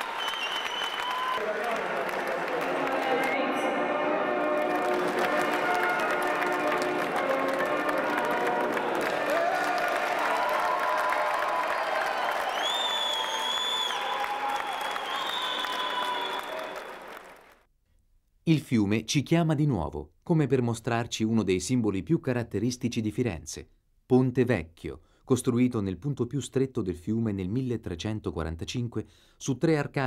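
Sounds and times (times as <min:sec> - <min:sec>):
high held whistle-like tones: 0:00.0 - 0:01.4, 0:11.7 - 0:16.9
audience applauding: 0:00.0 - 0:17.7.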